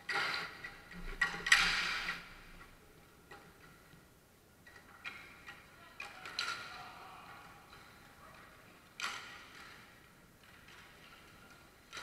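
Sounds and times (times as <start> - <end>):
hockey sticks striking ball and floor: 0.0 - 2.3, 9.0 - 12.0.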